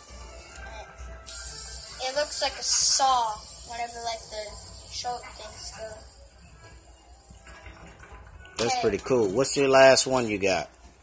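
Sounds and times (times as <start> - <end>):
faint background music: 0.0 - 11.0
fidget spinner whirring: 1.2 - 10.0.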